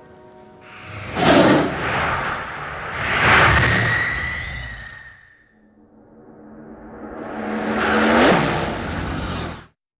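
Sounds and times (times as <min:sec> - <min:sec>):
whoosh with falling tone: 0:00.7 - 0:09.7.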